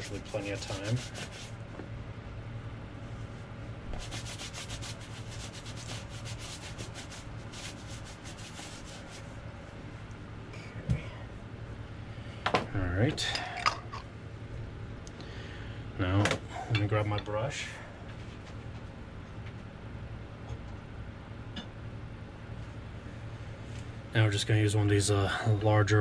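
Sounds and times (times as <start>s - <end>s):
brush rubbing cream into leather: 0.0s - 1.6s, 3.9s - 9.4s.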